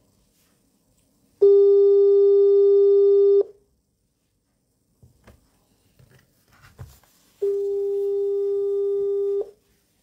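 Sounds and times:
phone ringing tone: 1.4s - 3.5s, 7.4s - 9.6s.

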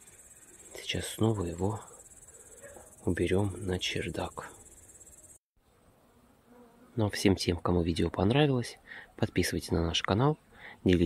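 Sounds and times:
crickets chirring: 0.0s - 5.4s
faint hiss: 0.0s - 6.0s.

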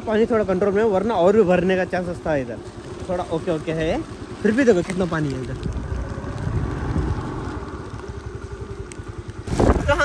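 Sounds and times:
heavy rain falling: 0.0s - 10.0s
wind buffeting microphone: 5.3s - 10.0s.

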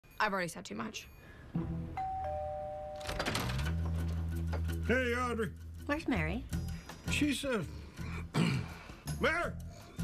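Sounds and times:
two-tone doorbell chime: 2.0s - 3.4s.

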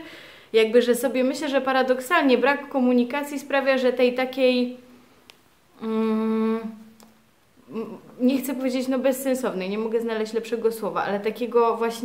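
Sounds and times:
woman speaking: 0.0s - 4.8s, 5.8s - 7.0s, 7.6s - 12.0s.

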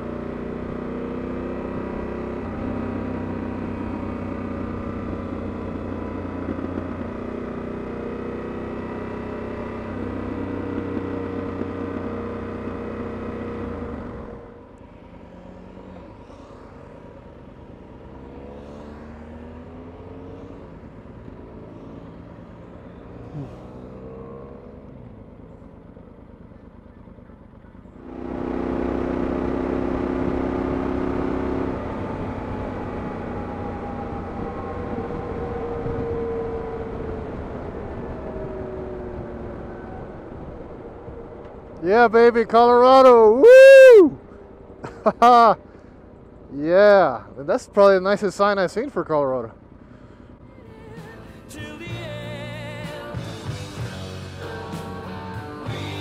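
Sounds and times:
motorcycle engine cruising: 0.0s - 56.0s
motorcycles passing by: 0.0s - 56.0s.

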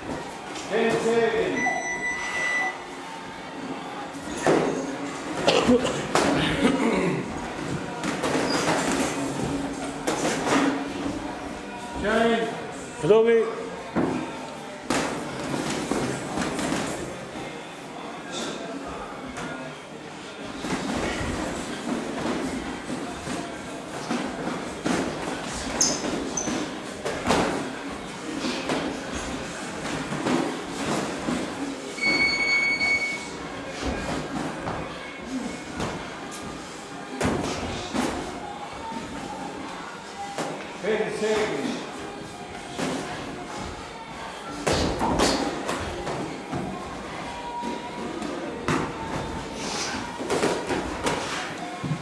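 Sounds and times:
brief high tone: 1.6s - 2.9s, 32.0s - 33.3s.

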